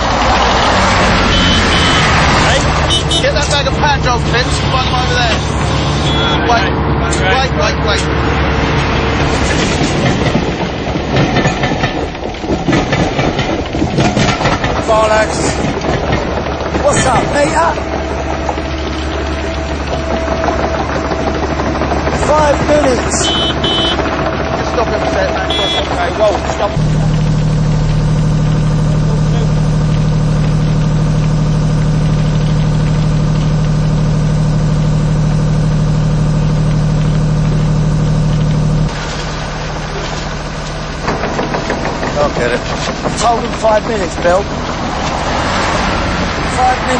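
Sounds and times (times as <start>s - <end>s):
engine idling: 0.0s - 46.9s
rail vehicle rumble: 0.0s - 46.9s
wheels clattering on rails: 0.0s - 46.9s.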